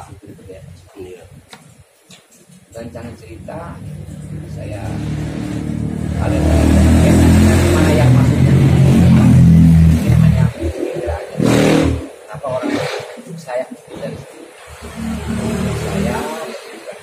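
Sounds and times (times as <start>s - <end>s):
vehicle engine passing by: 2.8s - 13.3s, 14.0s - 17.0s.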